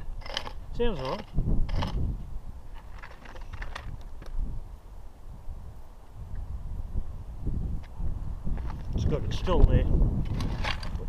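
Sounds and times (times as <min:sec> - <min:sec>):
faint clicks and scrapes: 0:00.0 - 0:02.0, 0:02.7 - 0:04.4, 0:10.2 - 0:11.0
wind buffeting microphone: 0:00.0 - 0:11.0.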